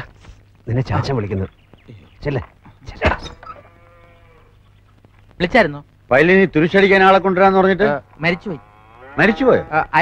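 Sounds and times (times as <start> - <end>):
faint drawn-out animal call: 3.0 - 4.6.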